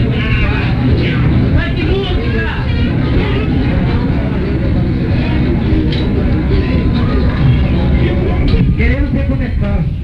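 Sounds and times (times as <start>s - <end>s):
low rumble from stage: 0.0s - 10.0s.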